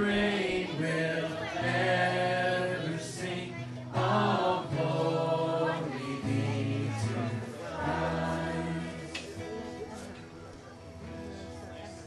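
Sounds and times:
man singing worship song: 0.0s - 9.2s
congregation singing along: 0.0s - 9.7s
acoustic guitar: 0.0s - 12.0s.

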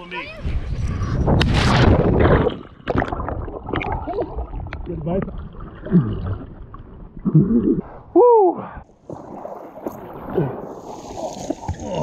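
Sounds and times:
wind on microphone: 0.2s - 2.8s.

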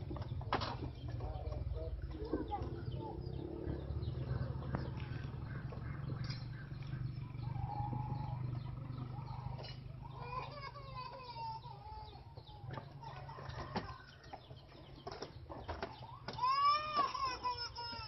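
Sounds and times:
bird calling: 1.0s - 18.0s.

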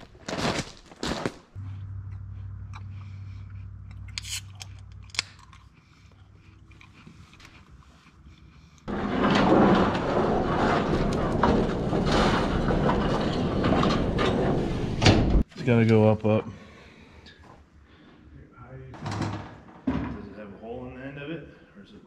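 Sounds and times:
footsteps: 0.0s - 5.1s
crunching on gravel: 0.0s - 12.6s
low steady cab hum: 1.6s - 5.0s.

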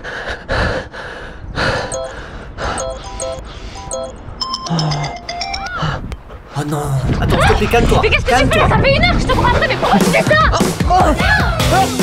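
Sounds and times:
man breathing hard: 0.0s - 3.9s.

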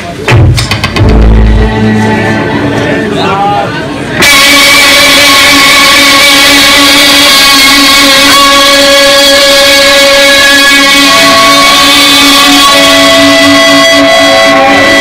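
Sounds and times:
distorted electric guitar feedback: 0.8s - 15.0s.

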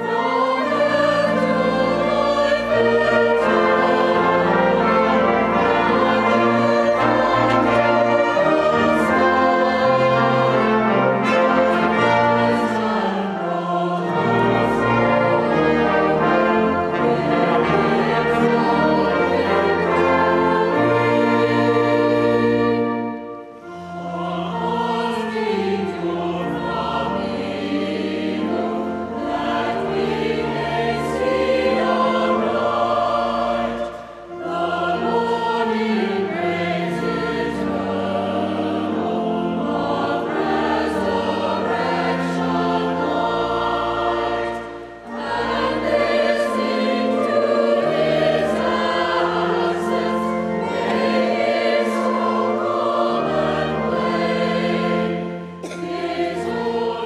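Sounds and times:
choir singing sacred music: 0.0s - 57.0s
pipe organ: 0.0s - 57.0s.

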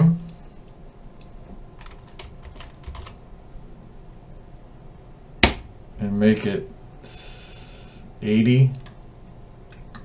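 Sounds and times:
computer keyboard typing: 1.8s - 3.2s.

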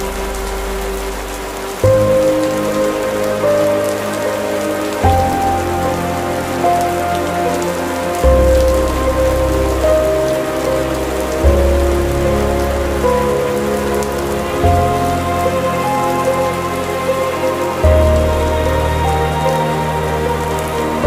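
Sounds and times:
dark classical instrumental music: 0.0s - 21.0s
steady rain: 0.0s - 21.0s.

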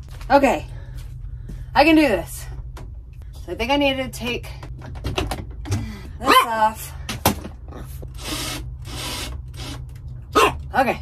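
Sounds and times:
cordless drill driving a screw: 8.2s - 9.8s.

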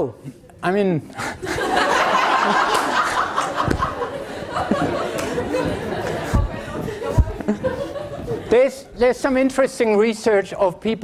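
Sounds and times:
students chattering: 1.5s - 9.0s.

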